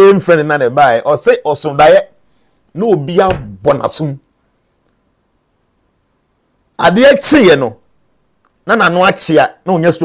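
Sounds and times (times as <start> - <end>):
man speaking: 0.0 - 2.1, 2.7 - 4.2, 6.8 - 7.8, 8.6 - 10.0
faint short clicks: 4.7 - 5.0.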